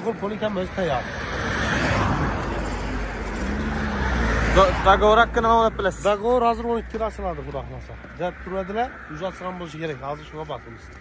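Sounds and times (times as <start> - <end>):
car passing: 0.0 - 11.0
low traffic rumble: 0.0 - 11.0.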